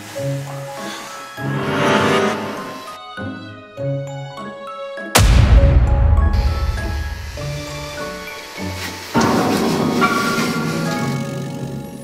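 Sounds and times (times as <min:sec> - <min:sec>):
soundtrack music with held notes: 0:00.0 - 0:12.0
loud noisy crash: 0:05.2 - 0:08.2.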